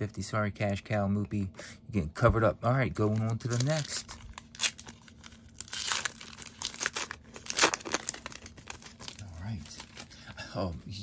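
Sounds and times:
wrapper tearing and crinkling: 3.0 - 10.1.

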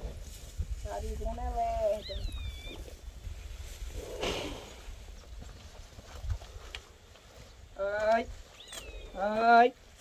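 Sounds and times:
wind rumble on microphone: 0.0 - 6.8.

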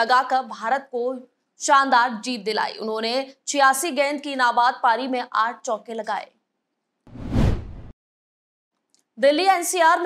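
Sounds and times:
transition whoosh with deep rumble: 7.1 - 7.9.

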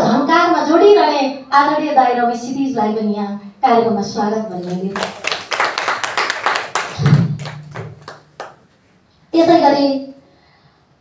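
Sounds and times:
small group applauding: 4.9 - 8.8.

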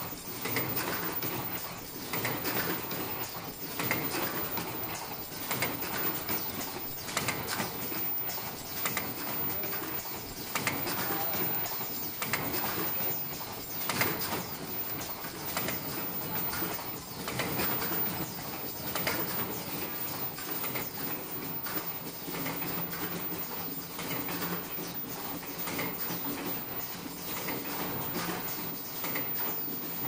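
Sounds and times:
production line machines clattering: 0.0 - 30.0.

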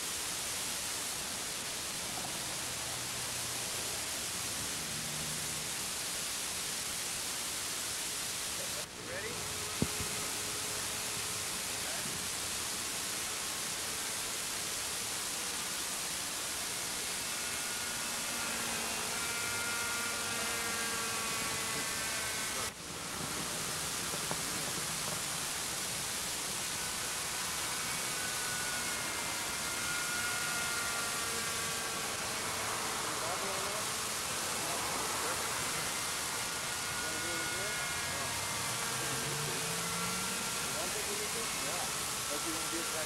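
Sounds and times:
distant model helicopter whine: 0.0 - 43.0
steady hiss: 0.0 - 43.0.

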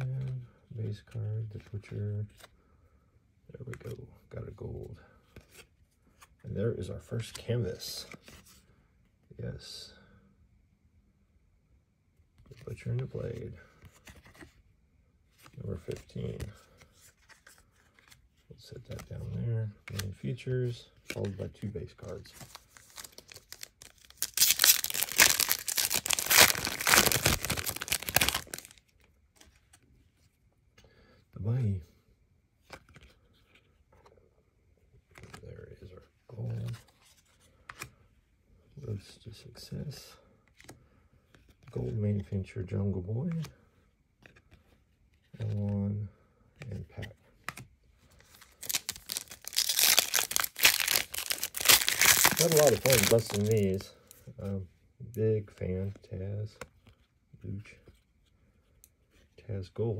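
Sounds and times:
foil wrapper tearing and crackling: 22.8 - 28.8, 48.5 - 53.8.

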